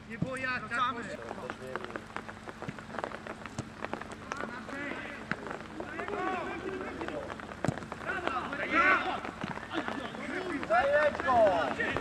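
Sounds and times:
footballers shouting: 0:03.9 - 0:12.0.

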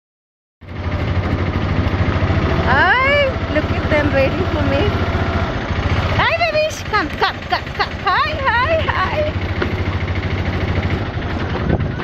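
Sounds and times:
vehicle engine idling: 0:00.6 - 0:12.0.

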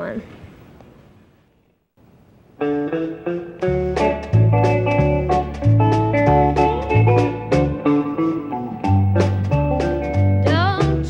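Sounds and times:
electric guitar lead melody: 0:02.6 - 0:11.0
alternating bass notes: 0:02.9 - 0:11.0.

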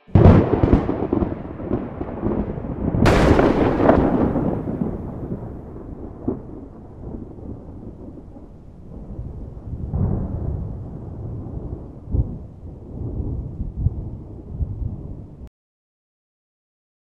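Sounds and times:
thunder rumble with sharp crack: 0:00.1 - 0:15.5.

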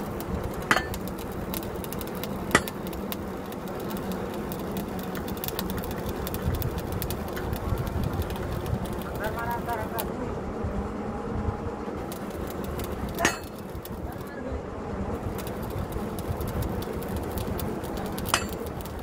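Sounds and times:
rapid metallic clicking: 0:00.0 - 0:10.1, 0:11.9 - 0:14.3, 0:15.2 - 0:19.0
drilling rig engine running: 0:11.7 - 0:14.4, 0:15.2 - 0:19.0.

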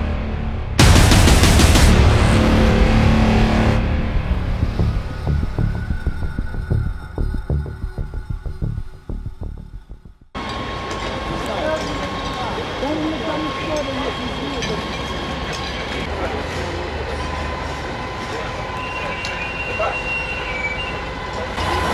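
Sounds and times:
music with steady beat: 0:00.7 - 0:10.3
thin steady whine: 0:01.8 - 0:19.9
fire engine motors rumbling: 0:01.8 - 0:21.9
people's voices: 0:11.1 - 0:20.2.

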